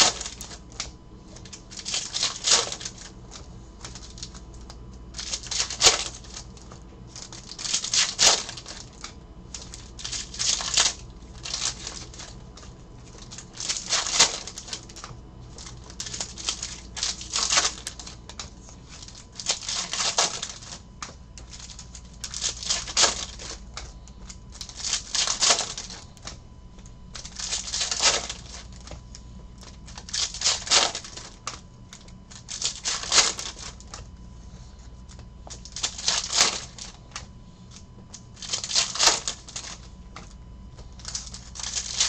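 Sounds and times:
foil wrappers tearing and crinkling: 0.0s - 23.9s, 24.5s - 26.4s, 27.2s - 29.0s, 29.6s - 34.0s, 35.6s - 37.2s, 38.2s - 39.9s, 41.0s - 42.0s.

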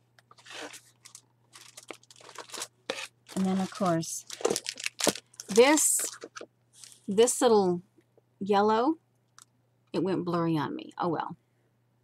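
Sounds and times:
packaging rustling and crinkling: 0.3s - 7.1s.

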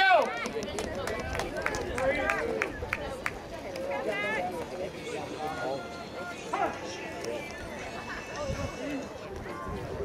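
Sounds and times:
indistinct voices talking: 0.3s - 10.0s.

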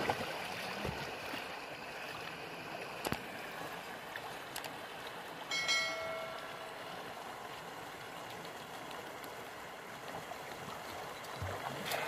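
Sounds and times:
river water over rocks: 0.0s - 12.0s.

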